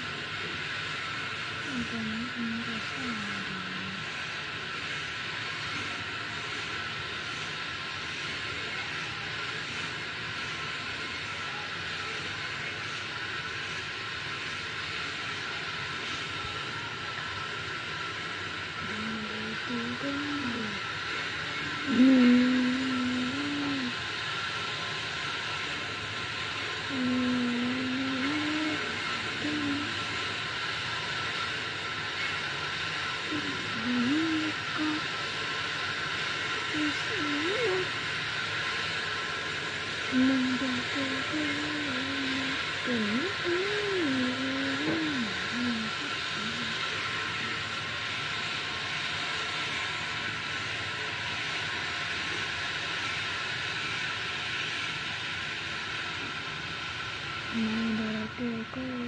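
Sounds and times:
steady background hiss: 0.0s - 59.0s
person humming: 18.8s - 20.8s, 21.9s - 24.0s, 26.9s - 29.9s, 33.3s - 35.0s, 36.8s - 37.9s, 40.1s - 46.7s, 57.6s - 59.0s
person speaking: 33.3s - 35.0s, 40.2s - 46.6s.

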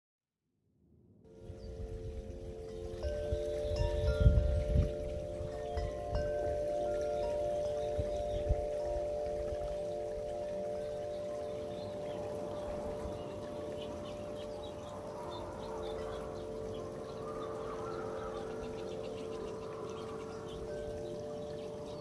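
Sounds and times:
chime-like ringing tones: 1.4s - 22.0s.

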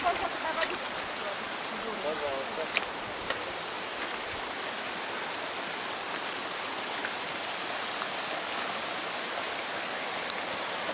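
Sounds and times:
stream running over rocks: 0.0s - 10.9s.

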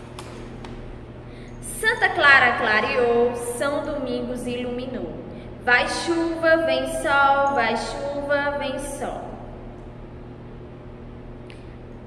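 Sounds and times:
low steady hum: 0.0s - 12.0s
woman speaking: 1.6s - 9.5s.

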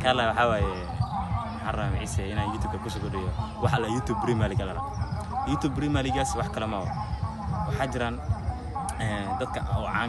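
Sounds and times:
man speaking: 1.6s - 4.8s, 8.9s - 10.0s.

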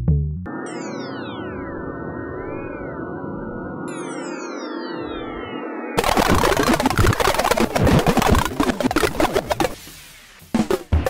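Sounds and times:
bass: 0.0s - 0.5s
synthesizer music with echoes: 0.0s - 11.0s.

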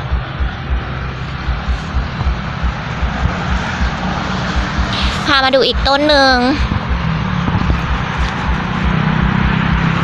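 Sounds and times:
low thumps: 0.0s - 10.0s
steady rumbling noise: 0.0s - 10.0s.

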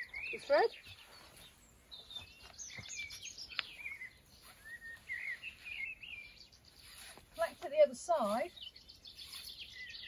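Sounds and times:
birds singing: 0.0s - 10.0s.

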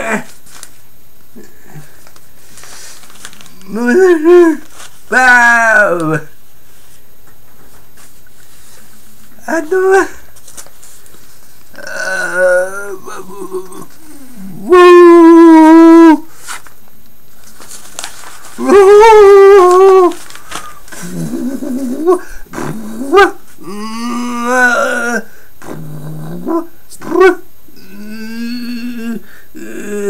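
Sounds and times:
man crying out: 3.7s - 6.3s, 9.4s - 10.2s, 11.8s - 16.2s, 18.6s - 20.2s, 21.2s - 25.3s
man humming low: 11.7s - 16.3s, 20.9s - 30.0s
man groaning low: 11.8s - 16.2s, 21.0s - 26.5s, 27.2s - 30.0s
man singing ooh note: 11.8s - 16.3s.

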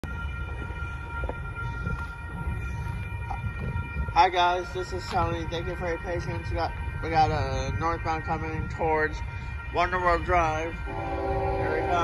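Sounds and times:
railroad crossing bell ringing: 0.0s - 12.0s
wind rumble on microphone: 0.0s - 12.0s.

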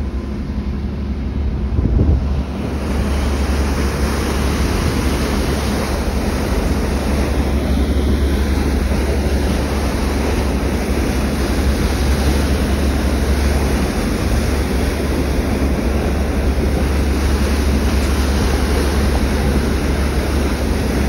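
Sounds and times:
churning wake rushing: 0.0s - 21.0s
ferry engine deep rumble: 0.0s - 21.0s
wind on microphone: 0.0s - 21.0s.

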